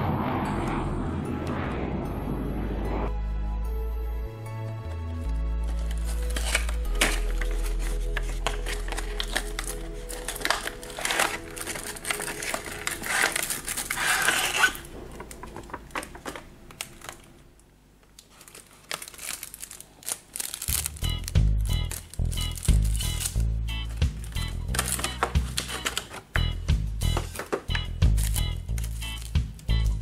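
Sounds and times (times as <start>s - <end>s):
soft background music: 0.2s - 14.8s, 20.4s - 30.0s
plastic packaging crinkling: 5.6s - 26.4s, 27.1s - 30.0s.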